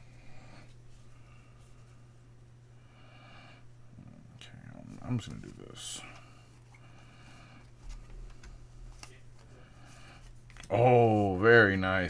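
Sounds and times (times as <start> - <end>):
trading cards rustling: 4.9 - 6.9.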